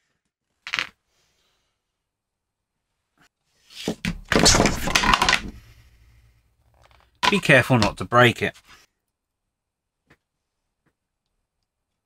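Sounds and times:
acrylic panels clattering: 4.1 - 5.8.

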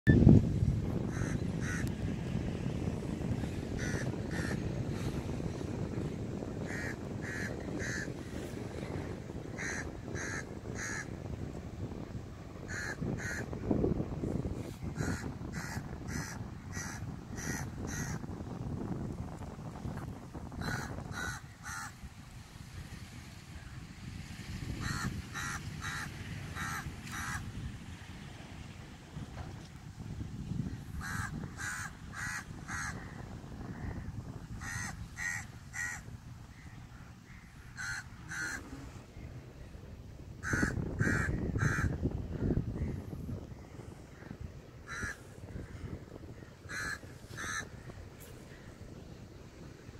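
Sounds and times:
wind on microphone: 0.0 - 49.9.

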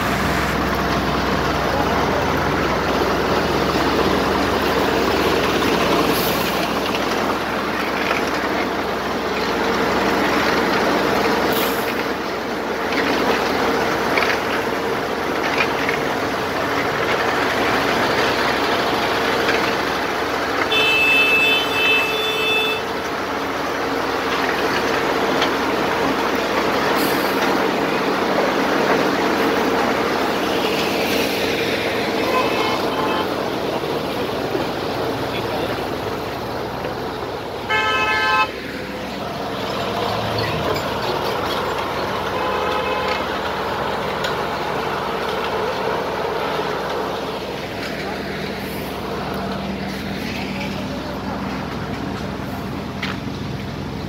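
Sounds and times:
paver engine humming: 0.0 - 54.0
horn sounding: 20.7 - 22.9, 32.2 - 33.4, 37.6 - 38.6.

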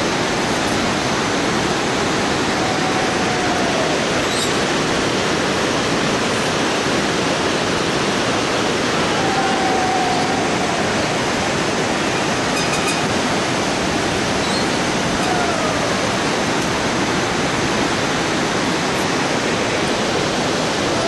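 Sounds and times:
whitewater river rushing: 0.0 - 21.0.

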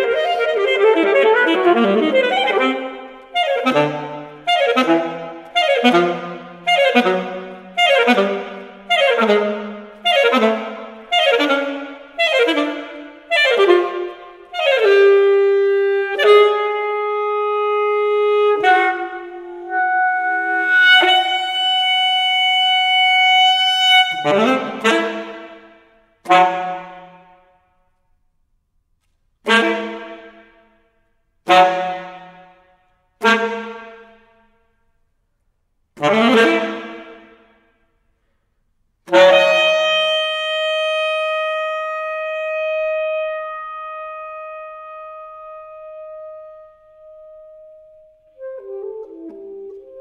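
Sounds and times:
saxophone long note: 0.0 - 25.3
saxophone holding high note: 18.4 - 24.3.

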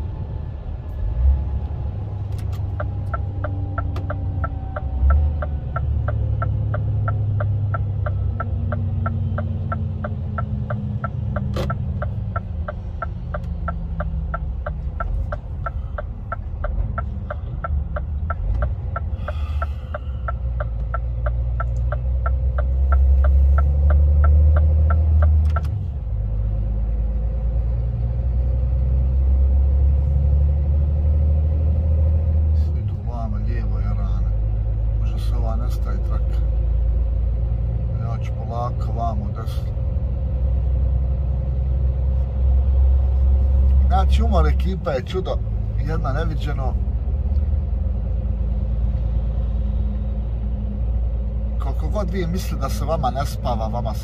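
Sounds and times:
truck engine and road rumble: 0.0 - 54.0
regular ticking: 2.4 - 25.8.

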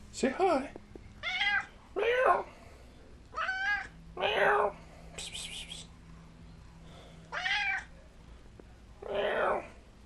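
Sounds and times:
cat meowing: 1.2 - 2.5, 3.4 - 4.8, 7.3 - 7.9, 9.0 - 9.8.

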